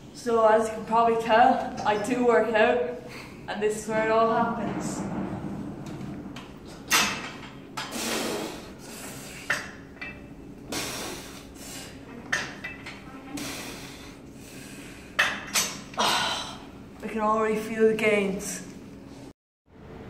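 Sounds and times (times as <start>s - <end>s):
noisy rushes: 3.0s - 7.4s.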